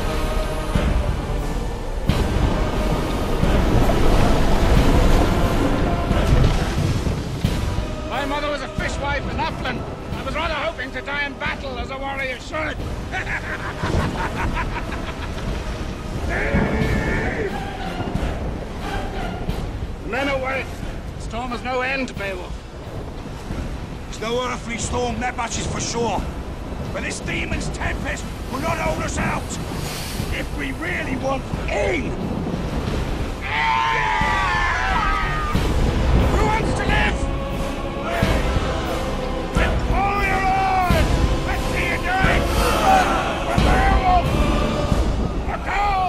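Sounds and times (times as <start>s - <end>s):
driving rain: 0.0s - 46.0s
sea noise: 0.0s - 46.0s
storm wind: 0.0s - 46.0s
man laughing heartily: 13.0s - 15.9s
man shouting long: 39.6s - 44.4s, 45.5s - 46.0s.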